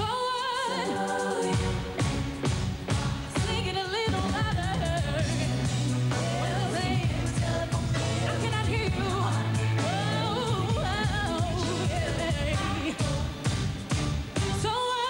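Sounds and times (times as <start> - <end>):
female vocal group singing: 0.0 - 2.1, 2.9 - 13.4
sustained bass line: 1.5 - 14.7.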